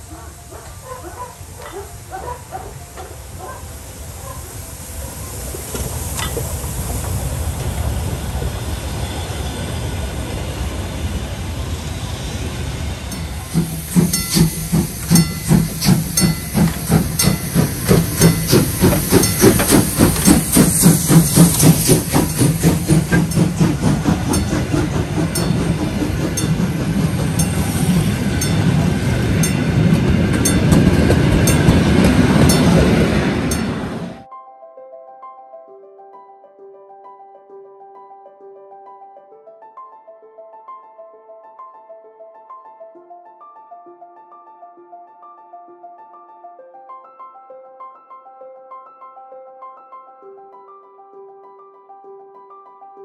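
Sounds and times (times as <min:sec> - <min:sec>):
hissing steam: 0:00.0 - 0:34.2
steam locomotive exhaust chuffs: 0:00.0 - 0:34.2
train wheels clicking over rails: 0:00.1 - 0:34.2.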